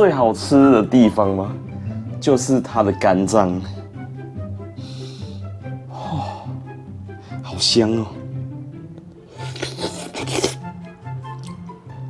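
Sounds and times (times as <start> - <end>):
background music: 0.0 - 12.0
eating mouth sounds: 9.2 - 11.6.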